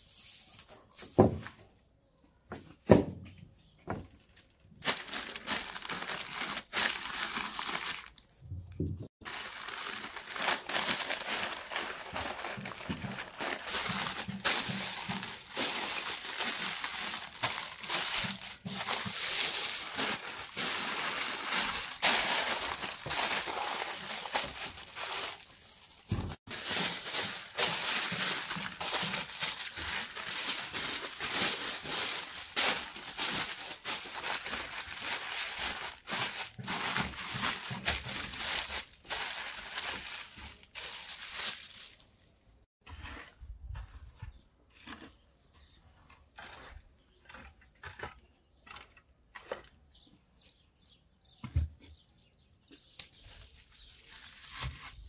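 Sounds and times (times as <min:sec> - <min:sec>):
aluminium foil crinkling: 0:04.2 - 0:08.4, 0:09.2 - 0:42.6, 0:52.8 - 0:55.0.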